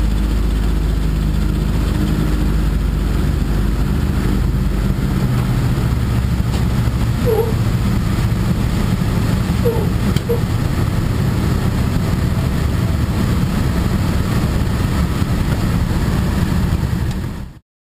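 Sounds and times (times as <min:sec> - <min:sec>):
propeller plane engines droning: 0:00.0 - 0:17.6.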